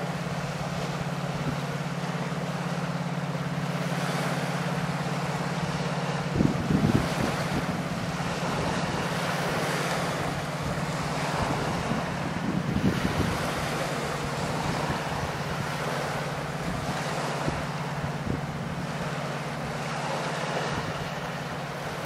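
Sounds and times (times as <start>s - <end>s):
choppy water: 0.0s - 22.0s
ship engine throbbing drone: 0.0s - 22.0s
wind: 0.0s - 22.0s
wind buffeting microphone: 4.9s - 22.0s.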